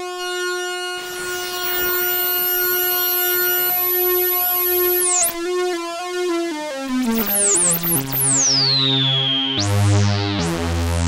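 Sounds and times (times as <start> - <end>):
synthesizer steady note: 0.7 - 5.4
hiss and sweeping high tones: 0.9 - 5.3.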